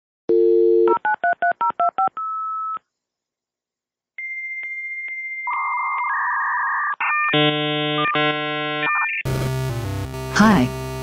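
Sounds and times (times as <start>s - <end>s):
dial tone: 0.3s - 1.0s.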